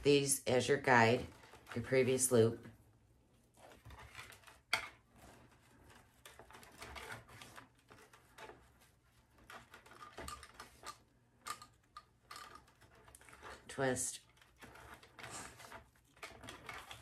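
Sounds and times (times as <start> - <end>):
ribbon rustling and crinkling: 3.4 - 17.0.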